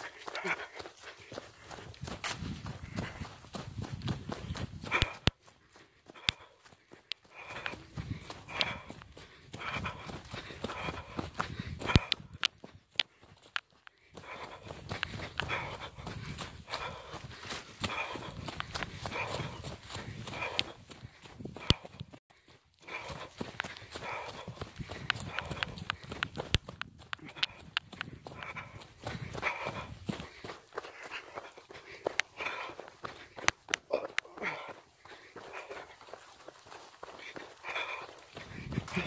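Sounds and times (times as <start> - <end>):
footsteps on dirt path: 0.0 - 39.0
heavy rhythmic breathing: 0.0 - 39.0.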